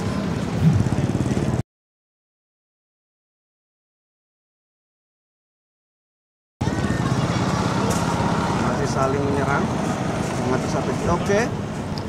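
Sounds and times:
road traffic rumble: 0.0s - 1.6s, 6.6s - 12.0s.

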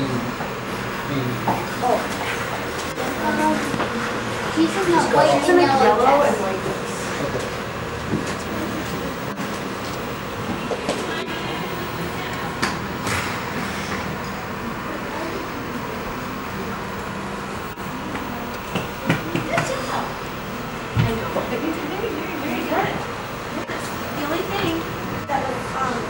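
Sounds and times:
steady rumbling: 0.0s - 26.0s
voices murmuring: 0.0s - 26.0s.

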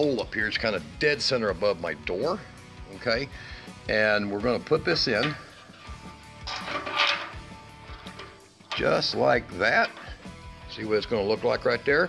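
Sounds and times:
background music: 0.0s - 12.0s
metal probe scraping in hole: 4.8s - 10.3s.

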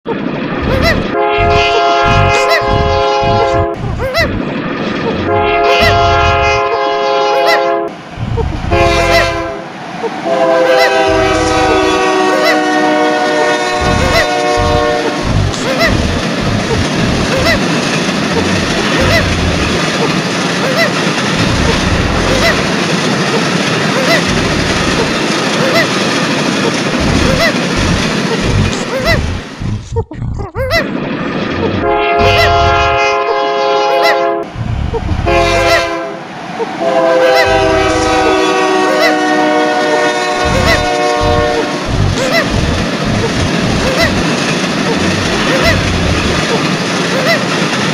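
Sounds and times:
train running rumble: 0.1s - 47.9s
low thuds: 0.6s - 4.5s, 13.7s - 17.5s, 18.4s - 19.8s, 21.4s - 22.7s, 26.9s - 30.6s, 40.4s - 44.2s
locomotive horn blasts: 1.1s - 3.8s, 5.2s - 8.0s, 8.7s - 9.6s, 10.2s - 15.2s, 31.8s - 34.5s, 35.2s - 36.2s, 36.8s - 41.8s
wheels clicking on rail joints: 13.4s - 29.6s, 36.6s - 47.9s.

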